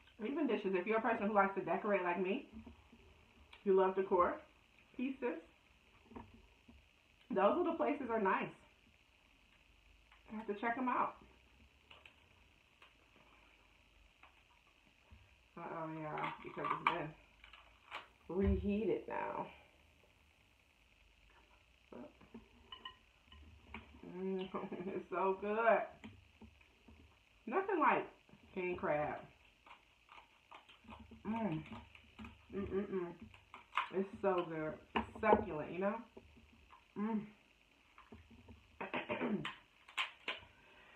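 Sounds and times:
crab shell cracking: 17.3 - 18.2, 29.3 - 32.5, 33.1 - 34.0, 39.4 - 40.5.

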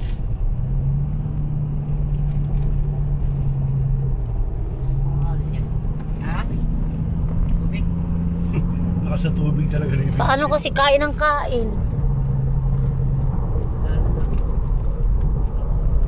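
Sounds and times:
car engine and road rumble: 0.0 - 16.0.

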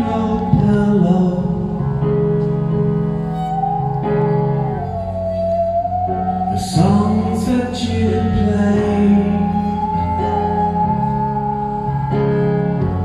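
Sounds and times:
keyboard chords: 0.0 - 13.0
bowed musical saw: 2.7 - 13.0.

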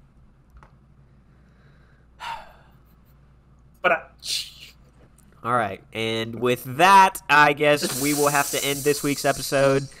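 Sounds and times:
man breathing sharply: 1.1 - 2.7.

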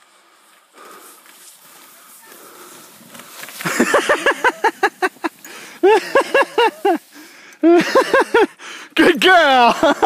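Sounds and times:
person laughing loudly: 3.6 - 7.0, 7.6 - 8.6, 9.6 - 10.0.

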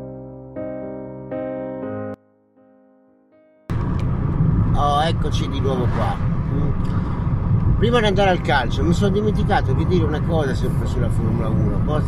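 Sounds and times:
road noise rumble: 3.7 - 12.0
man speaking: 4.8 - 6.8, 7.8 - 12.0.

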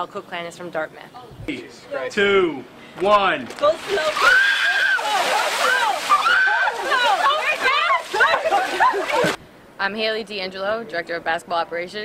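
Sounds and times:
water pouring and splashing: 3.5 - 9.4
people shrieking and yelling: 4.0 - 9.4.

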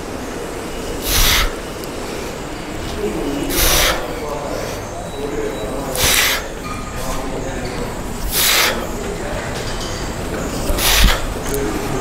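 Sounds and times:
gym background noise: 0.0 - 12.0
man exhaling forcefully: 1.0 - 1.6, 3.5 - 4.1, 8.3 - 8.8, 10.8 - 11.3.

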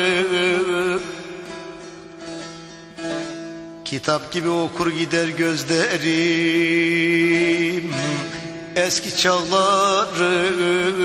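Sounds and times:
person singing: 0.0 - 1.6, 3.9 - 11.0
plucked string instrument: 0.0 - 11.0.

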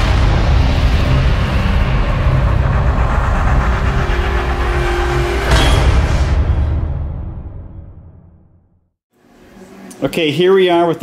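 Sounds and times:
deep rumble: 0.0 - 8.8.

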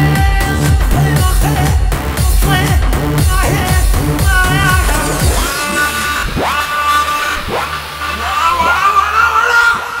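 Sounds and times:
steady low bass: 0.0 - 9.0
lead line sliding to high note: 3.4 - 8.6.

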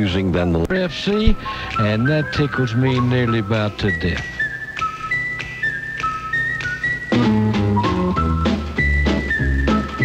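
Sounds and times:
whistled tune on radio: 1.4 - 10.0.

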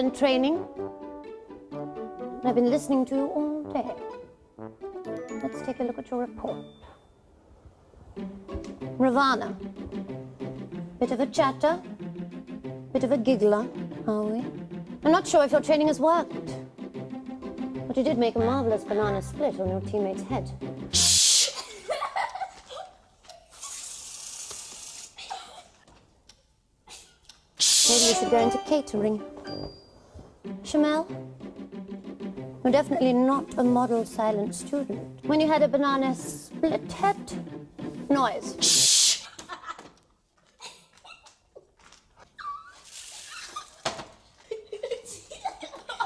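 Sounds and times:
loud shush: 21.0 - 21.6, 27.6 - 28.2, 38.6 - 39.3
children giggling: 21.4 - 23.7, 39.2 - 41.5, 42.4 - 46.0
people laughing: 21.6 - 23.0
child squealing: 42.4 - 43.8.

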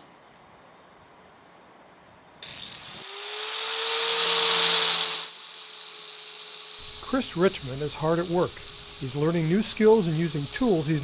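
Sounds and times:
faint outdoor hiss: 0.0 - 2.6
power tool cutting metal: 2.4 - 11.0.

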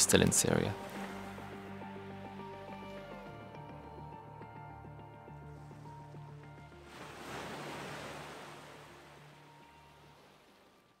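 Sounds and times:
background music chord: 0.0 - 7.4
surf washing onto beach: 6.8 - 11.0.

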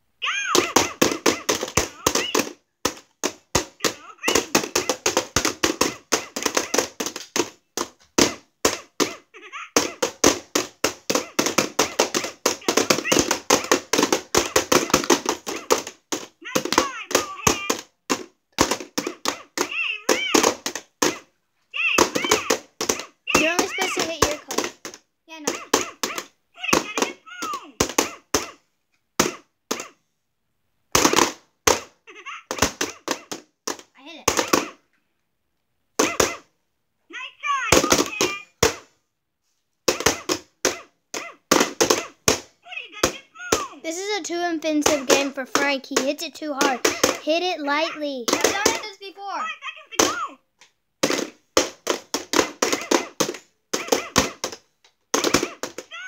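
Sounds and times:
children calling out: 0.2 - 2.6, 3.8 - 5.2, 11.2 - 17.9, 19.0 - 24.6, 25.3 - 28.2, 37.1 - 38.6, 42.0 - 50.4, 55.3 - 56.0
tapping on plastic domes: 0.3 - 30.0, 30.9 - 35.0, 36.0 - 36.5, 37.6 - 39.0, 39.8 - 56.0.

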